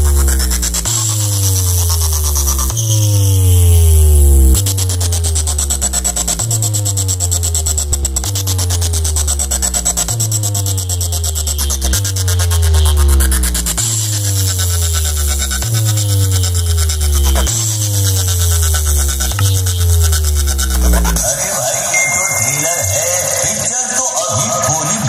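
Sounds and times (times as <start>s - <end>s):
loud electronic dance music: 9.0s - 25.0s.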